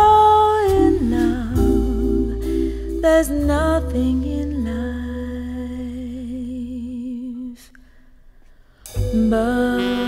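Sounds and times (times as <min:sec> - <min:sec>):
soft bass accompaniment: 0:00.0 - 0:07.6, 0:08.2 - 0:10.0
person singing with vibrato: 0:09.1 - 0:10.0.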